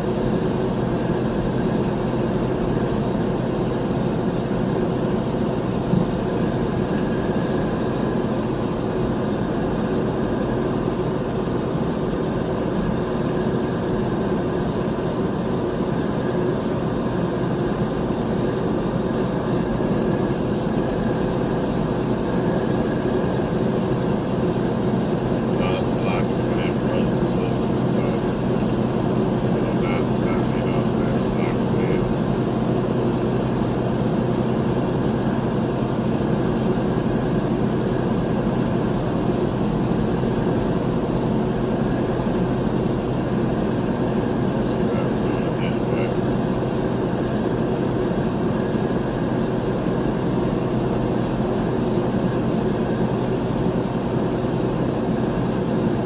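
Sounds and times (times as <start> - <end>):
engine and tyre noise in cab: 0.0 - 56.0.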